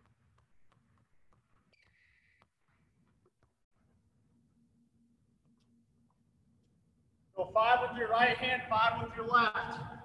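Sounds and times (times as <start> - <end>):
basketballs being dribbled: 0.0 - 3.6.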